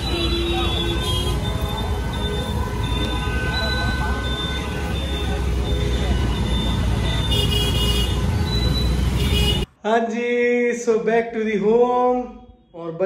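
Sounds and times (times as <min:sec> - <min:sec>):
motorbike engine and road noise: 0:00.0 - 0:09.7.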